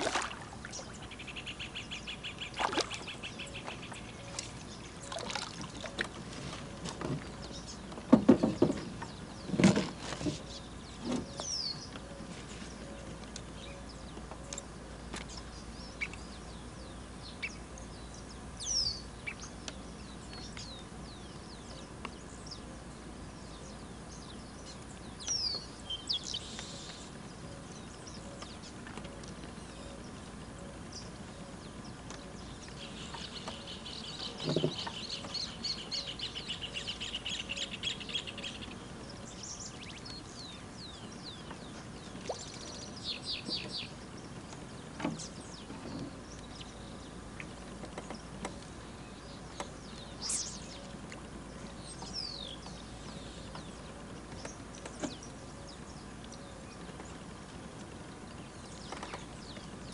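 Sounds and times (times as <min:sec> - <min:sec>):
birds chirping and trilling: 0:00.0 - 0:59.9
dull knock: 0:08.1 - 0:08.9.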